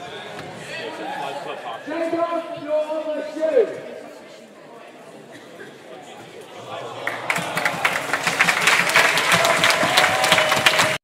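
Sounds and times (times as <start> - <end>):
large audience applauding: 6.8 - 11.0.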